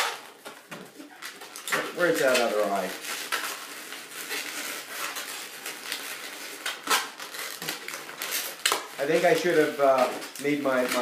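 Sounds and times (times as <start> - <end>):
balloons squeaking and rubbing: 0.0 - 11.0.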